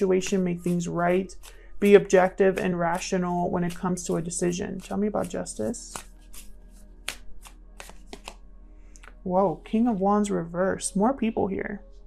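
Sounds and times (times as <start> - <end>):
cards being shuffled: 0.0 - 8.4, 9.0 - 9.2
soft background music: 0.0 - 12.0.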